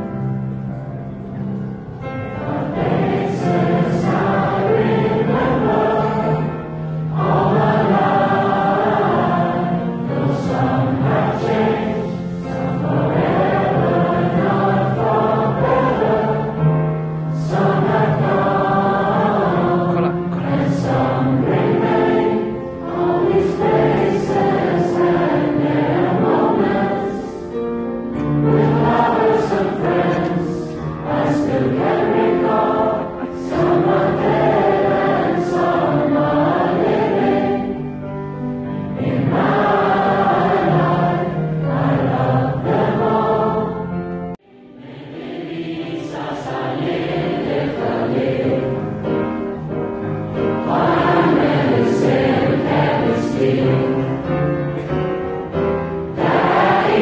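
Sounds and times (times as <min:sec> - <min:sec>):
crowd singing together: 0:01.5 - 0:57.0.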